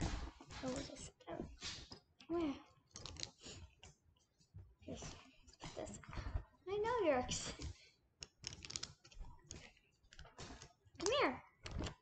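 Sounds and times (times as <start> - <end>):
microphone handling clicks and knocks: 11.6 - 12.0.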